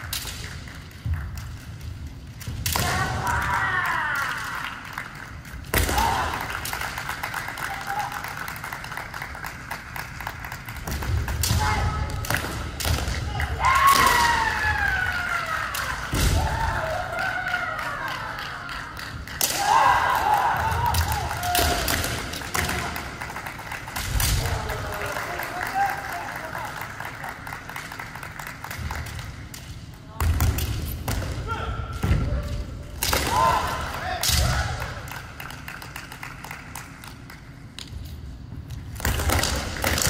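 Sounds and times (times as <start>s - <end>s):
people shouting cries: 19.4s - 21.9s.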